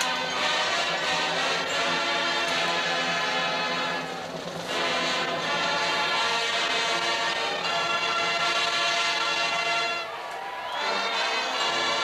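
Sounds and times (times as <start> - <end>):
marching band playing: 0.0 - 12.0.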